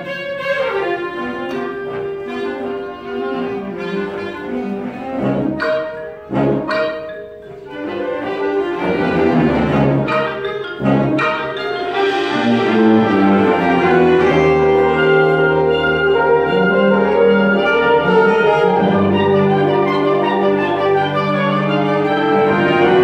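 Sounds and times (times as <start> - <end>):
concert band playing: 0.0 - 23.0.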